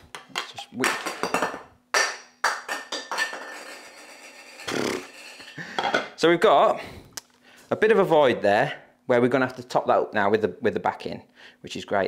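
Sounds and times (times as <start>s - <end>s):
glass lid clinking and knocking: 0.2s - 6.2s.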